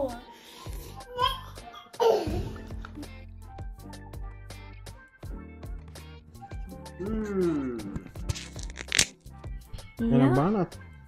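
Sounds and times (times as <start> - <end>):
background music: 0.0 - 11.0
man chewing: 7.0 - 9.2
chopsticks clicking: 8.3 - 9.2.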